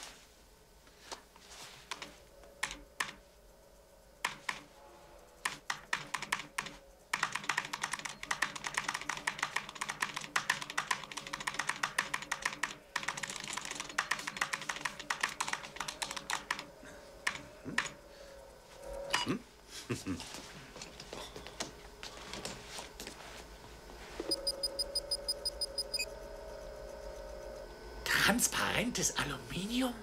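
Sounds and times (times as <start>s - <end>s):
fast typing on keyboard: 1.9s - 3.2s, 4.2s - 4.6s, 5.4s - 18.0s.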